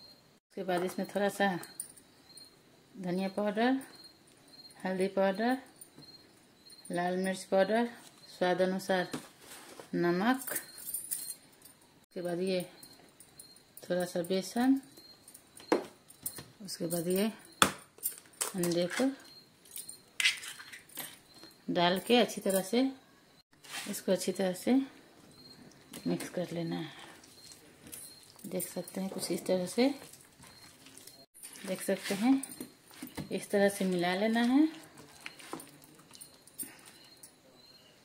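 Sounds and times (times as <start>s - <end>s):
glass bangles jingling: 10.2s - 12.0s, 12.6s - 22.8s, 25.3s - 37.9s
hand squelching wet batter: 27.2s - 37.0s.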